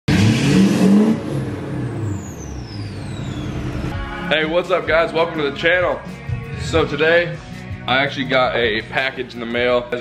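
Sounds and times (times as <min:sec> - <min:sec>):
pickup truck engine revving: 0:00.1 - 0:03.9.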